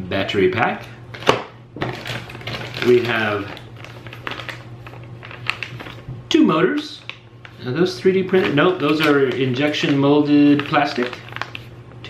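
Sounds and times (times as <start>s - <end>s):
plastic bag crinkling: 0.8s - 6.1s, 6.8s - 11.8s.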